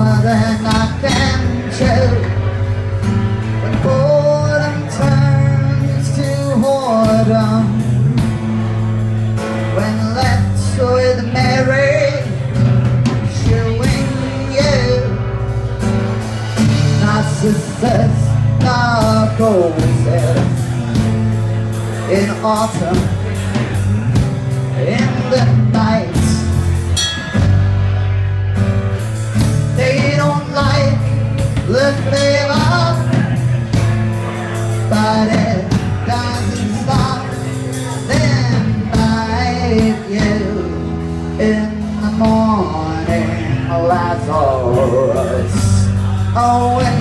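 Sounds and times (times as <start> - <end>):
man singing: 0.0 - 21.0, 21.9 - 26.8, 29.3 - 47.0
acoustic guitar strumming: 0.0 - 47.0
drums: 0.0 - 47.0
electric bass: 0.0 - 47.0.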